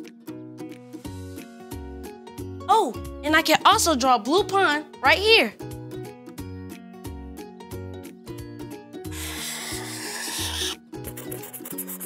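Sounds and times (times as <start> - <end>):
light background music: 0.0 - 12.0
marker rubbing on cardboard: 9.3 - 12.0.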